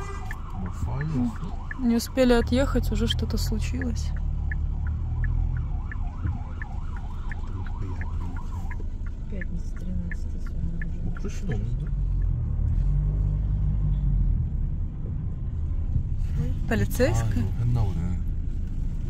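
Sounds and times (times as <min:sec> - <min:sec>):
siren warbling: 0:00.0 - 0:08.9
light ticking: 0:00.0 - 0:12.6
car interior rumble: 0:00.0 - 0:19.0.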